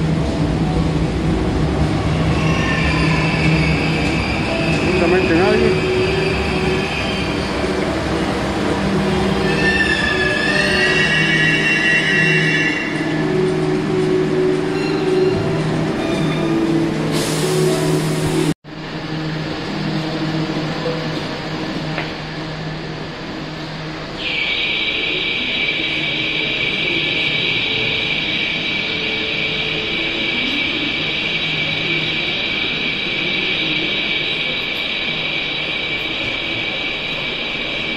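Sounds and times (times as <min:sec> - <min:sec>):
train low electrical hum: 0:00.0 - 0:37.9
high metallic squeals: 0:09.2 - 0:13.3, 0:14.4 - 0:16.8.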